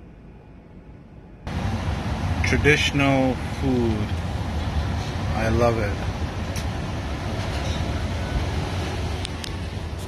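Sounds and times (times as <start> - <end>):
ventilation rumble: 0.0 - 10.0.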